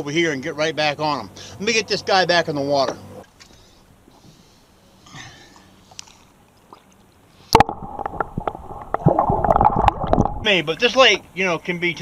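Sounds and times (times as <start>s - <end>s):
water splash: 7.5s - 10.7s
muffled underwater gurgling: 7.6s - 10.7s.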